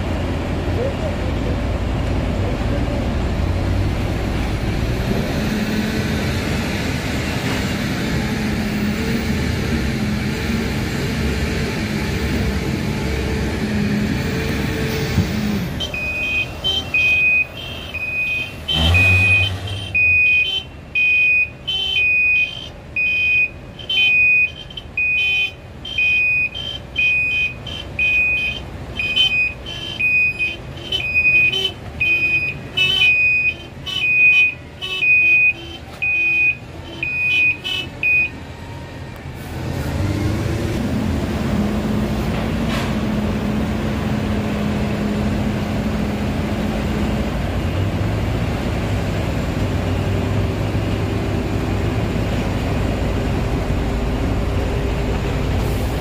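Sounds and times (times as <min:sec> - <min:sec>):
low drone of heavy machinery: 0:00.0 - 0:16.4
truck reversing alarm beeping: 0:15.7 - 0:39.2.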